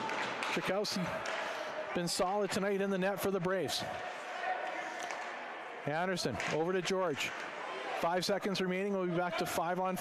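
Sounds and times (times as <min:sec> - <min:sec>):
hockey sticks tapping puck: 0:00.0 - 0:01.6, 0:04.6 - 0:05.3
man commentating: 0:01.9 - 0:03.9, 0:08.0 - 0:10.0.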